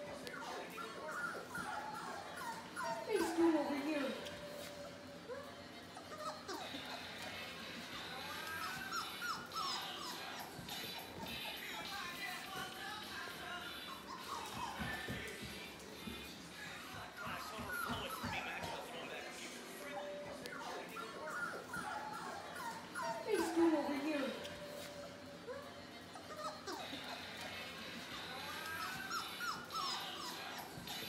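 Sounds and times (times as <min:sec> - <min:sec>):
puppies whimpering: 0:00.0 - 0:31.0.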